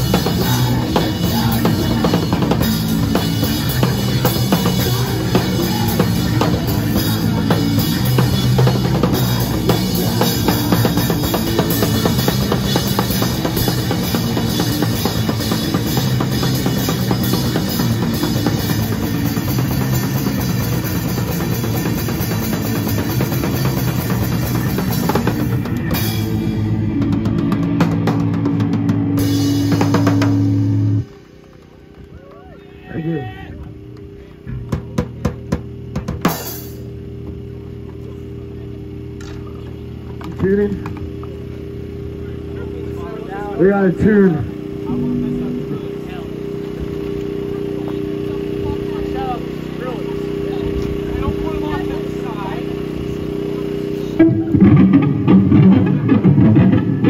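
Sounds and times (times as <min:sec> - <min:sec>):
drum hits: 0:00.0 - 0:31.0, 0:34.5 - 0:37.4, 0:54.2 - 0:57.0
live rock band playing: 0:00.0 - 0:31.1, 0:44.6 - 0:48.2, 0:52.7 - 0:57.0
amplifier hum: 0:25.4 - 0:31.1, 0:36.8 - 0:57.0.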